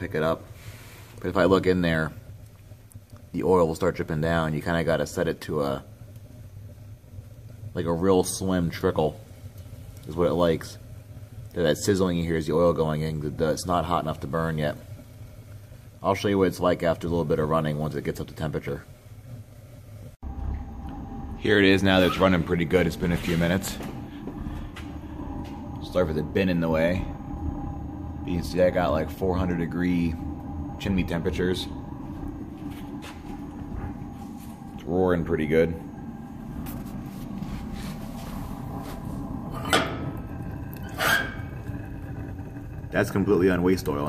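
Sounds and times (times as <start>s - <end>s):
heater flame rumbling: 0.0s - 44.0s.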